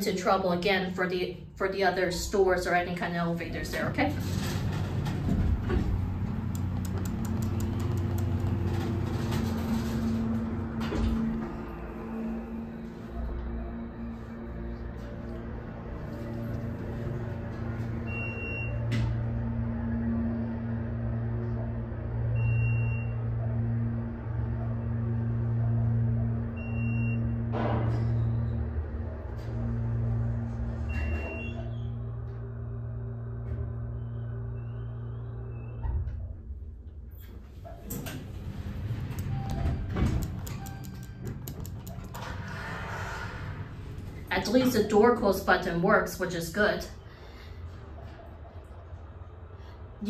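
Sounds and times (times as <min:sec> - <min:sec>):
elevator doors rattling and sliding: 0:02.7 - 0:33.9, 0:35.7 - 0:46.7
elevator pump motor humming: 0:03.9 - 0:36.2
clicks: 0:06.5 - 0:08.8, 0:39.1 - 0:42.3.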